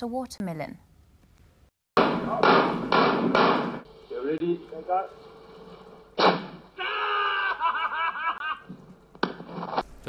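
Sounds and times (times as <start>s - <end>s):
gunshots: 2.0s - 3.8s, 6.2s - 6.6s.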